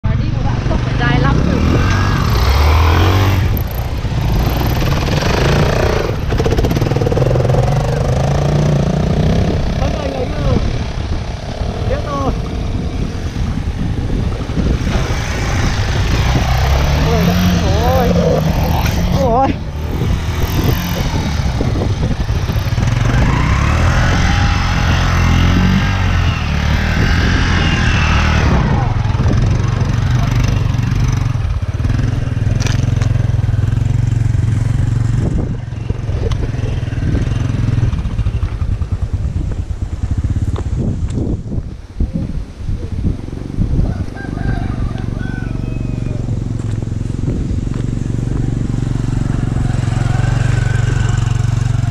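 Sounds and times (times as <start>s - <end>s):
people talking: 0.0s - 2.0s, 9.8s - 10.7s, 11.8s - 12.4s, 17.0s - 19.6s
motorcycle engines running: 0.0s - 51.9s
motorcycle revving: 0.0s - 51.9s.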